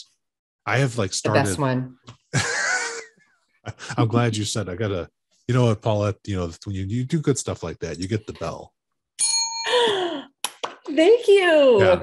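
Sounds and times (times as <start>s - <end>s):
person speaking: 0.7s - 1.9s, 3.7s - 8.7s, 11.7s - 12.0s
breathy wheezing laugh: 2.3s - 4.0s.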